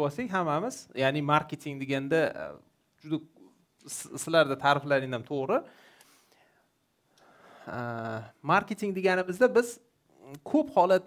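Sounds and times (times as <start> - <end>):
man speaking: 0.0 - 5.7, 7.6 - 11.0
soft breath: 5.7 - 7.8.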